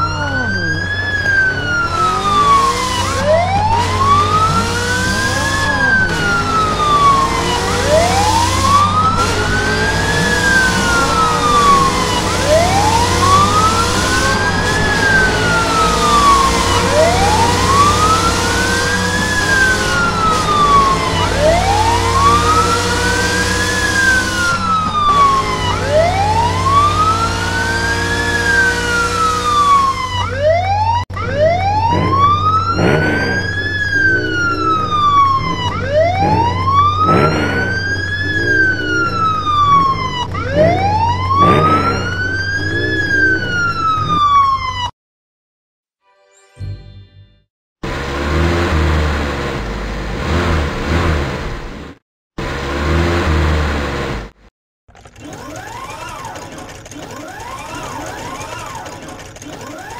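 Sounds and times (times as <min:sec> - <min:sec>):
police siren wailing: 0:00.0 - 0:45.0, 0:55.2 - 0:59.9.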